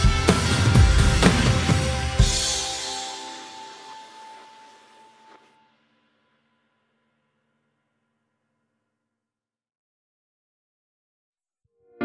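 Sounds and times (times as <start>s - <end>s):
rock song final chord: 0.0s - 5.5s
cymbal wash: 0.0s - 7.2s.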